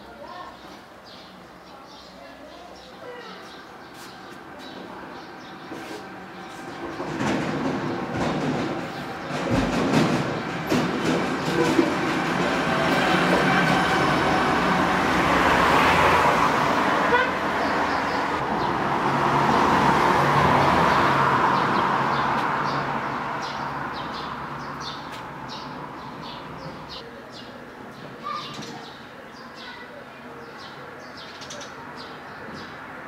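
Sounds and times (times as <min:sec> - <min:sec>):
knocks: 0:07.0 - 0:12.1
vehicle engine passing: 0:12.4 - 0:27.0.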